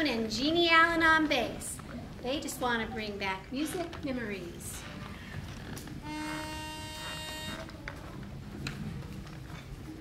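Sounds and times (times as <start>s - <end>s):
low room noise: 0.0s - 10.0s
pitch pipe note: 6.0s - 7.8s.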